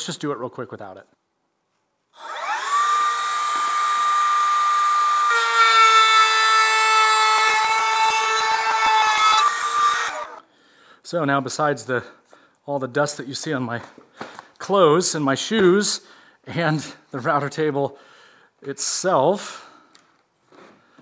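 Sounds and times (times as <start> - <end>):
router bit cutting wood: 2.2 - 10.4
router whine: 2.2 - 10.4.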